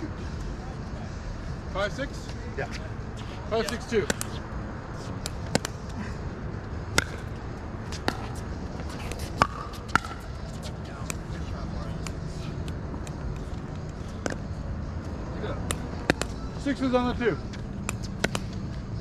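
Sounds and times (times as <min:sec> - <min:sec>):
paddles hitting plastic ball: 0:17.8 - 0:18.5.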